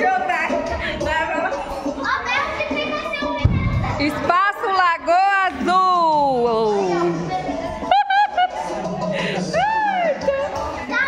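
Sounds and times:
children chattering: 0:00.0 - 0:04.6, 0:06.0 - 0:11.0
low thump on microphone: 0:03.4 - 0:04.0.

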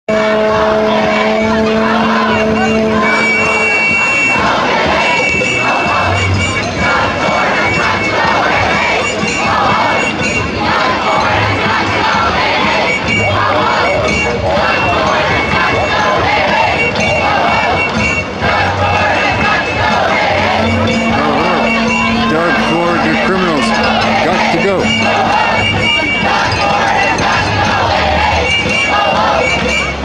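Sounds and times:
plastic horn long low note: 0:00.1 - 0:03.9, 0:20.4 - 0:26.3
crowd voices: 0:00.1 - 0:30.0.

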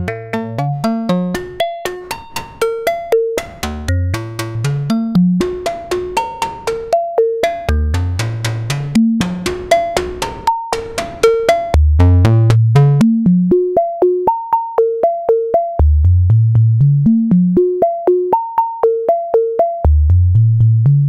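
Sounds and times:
plucked synth notes: 0:00.0 - 0:21.0
low bass notes climbing: 0:07.7 - 0:09.6, 0:11.8 - 0:13.8, 0:15.8 - 0:18.0, 0:19.8 - 0:21.0.

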